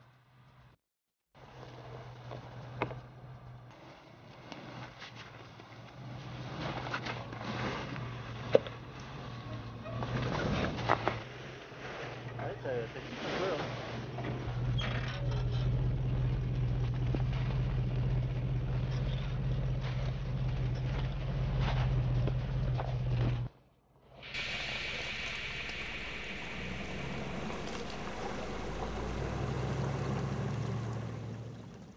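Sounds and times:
engine running at low revs: 14.5 - 23.5, 24.2 - 31.9
tyres hissing through water and mud: 24.2 - 31.9.

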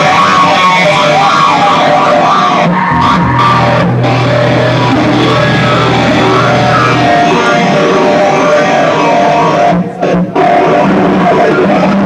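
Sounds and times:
live rock band playing: 0.0 - 11.4
steady low note: 2.9 - 8.7.

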